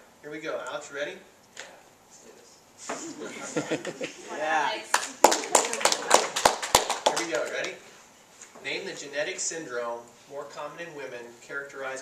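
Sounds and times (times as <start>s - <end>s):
people clapping: 4.8s - 7.8s.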